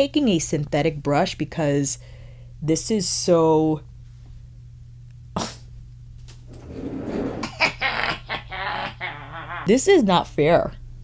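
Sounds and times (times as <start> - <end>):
woman laughing: 7.4 - 9.8.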